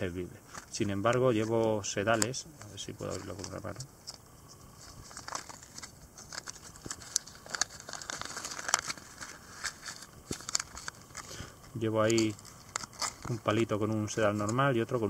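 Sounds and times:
packaging crinkling: 0:01.4 - 0:13.8.

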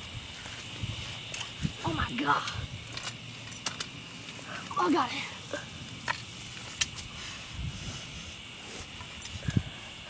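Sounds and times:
high-pitched background hum: 0:00.0 - 0:10.0.

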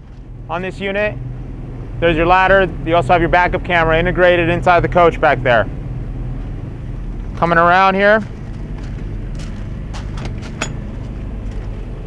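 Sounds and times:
diesel generator drone: 0:00.0 - 0:12.0
footsteps on gravel: 0:08.2 - 0:12.0.

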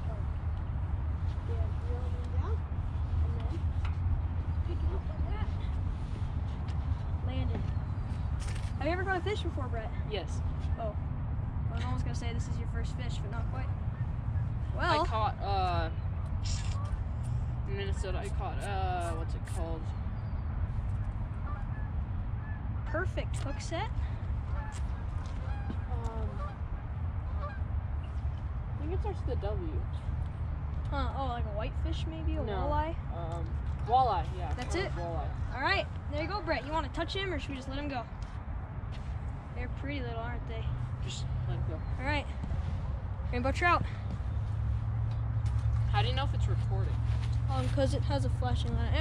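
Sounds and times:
steady low rumble: 0:00.0 - 0:49.0.

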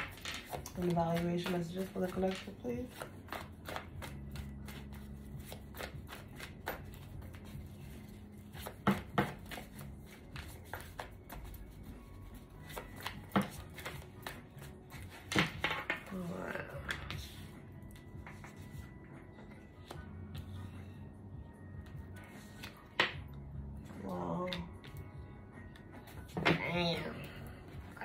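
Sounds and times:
cards being shuffled: 0:00.0 - 0:16.2, 0:16.9 - 0:20.6, 0:22.2 - 0:23.1.

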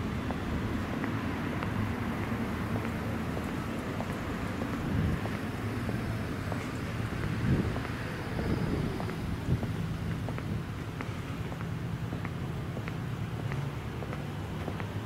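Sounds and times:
faint engine hum: 0:00.0 - 0:15.0
road traffic rumble: 0:00.0 - 0:15.0
wind on microphone: 0:04.0 - 0:11.1.

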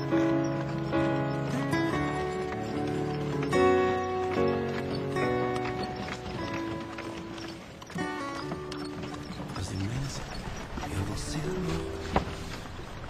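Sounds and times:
film score music: 0:00.0 - 0:13.0
horse hooves clip-clopping: 0:00.0 - 0:13.0.

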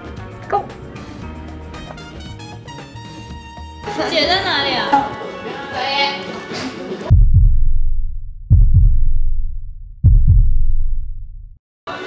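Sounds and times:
deep heartbeat pulses: 0:07.1 - 0:11.6.

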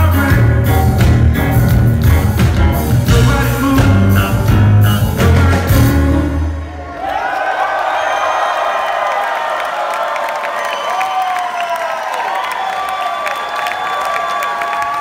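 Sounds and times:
crowd cheering and clapping: 0:06.5 - 0:15.0.

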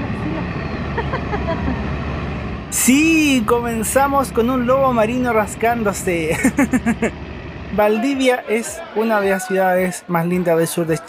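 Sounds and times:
low outdoor rumble: 0:00.0 - 0:09.0
faint voices: 0:07.7 - 0:11.0.

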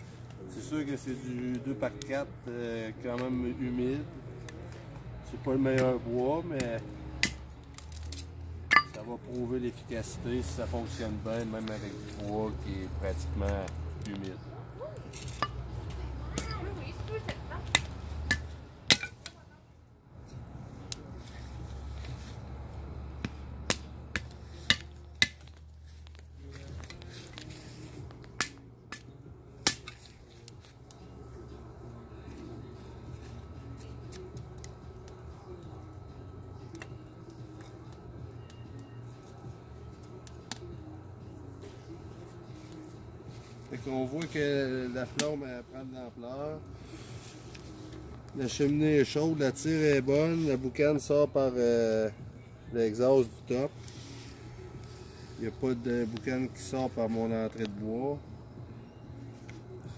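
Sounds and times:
fire popping and cracking: 0:06.6 - 0:09.1, 0:10.0 - 0:19.4, 0:20.8 - 0:31.4
wood fire rumbling: 0:20.5 - 0:33.5.

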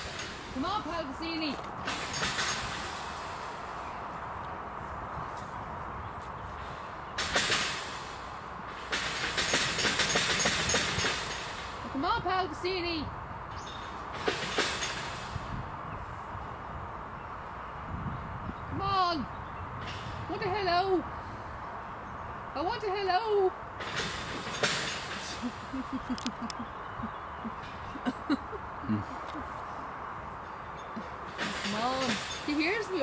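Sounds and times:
low outdoor rumble: 0:07.8 - 0:33.0.

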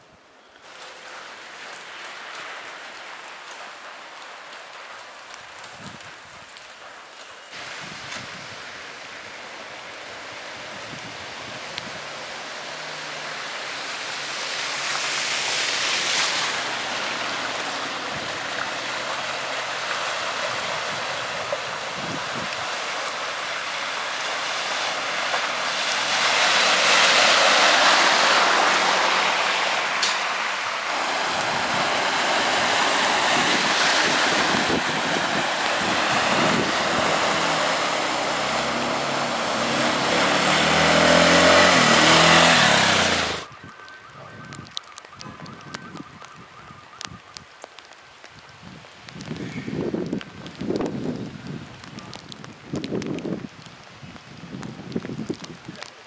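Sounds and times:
car tyres swishing through slush: 0:07.4 - 0:43.5.

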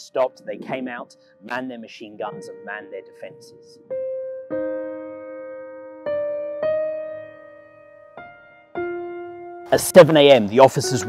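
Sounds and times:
slow solo piano: 0:03.2 - 0:10.0.

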